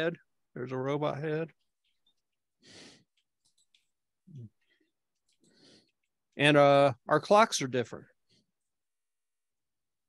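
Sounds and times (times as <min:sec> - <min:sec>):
person breathing out: 0:02.6 - 0:03.1.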